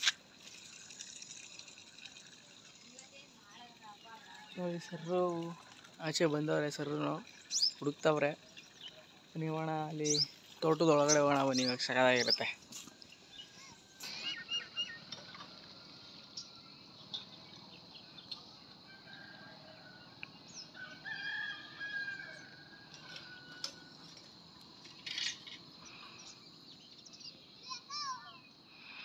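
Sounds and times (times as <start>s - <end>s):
small birds chirping: 2.6s - 18.8s, 25.0s - 29.0s
rooster crowing: 18.8s - 24.0s.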